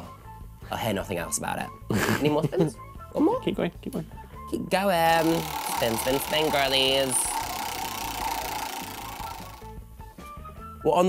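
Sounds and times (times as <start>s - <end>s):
background music: 0.0s - 11.0s
spinning disc whirring: 5.0s - 9.7s.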